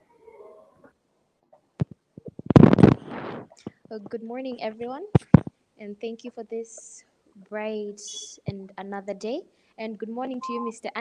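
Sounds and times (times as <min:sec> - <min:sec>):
crackly burst of microphone noise: 0:01.8 - 0:03.9.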